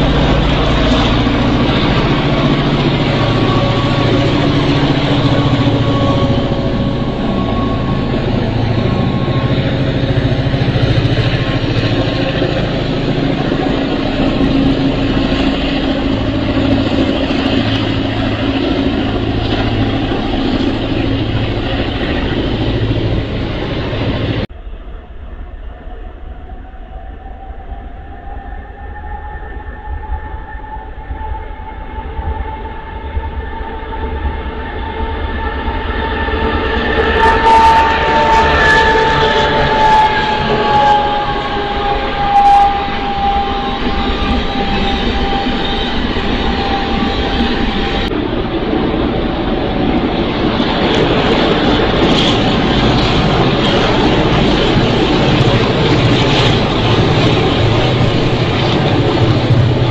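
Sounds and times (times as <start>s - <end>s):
approaching train whine: 0.0s - 59.9s
passenger train rumbling past: 0.0s - 59.9s.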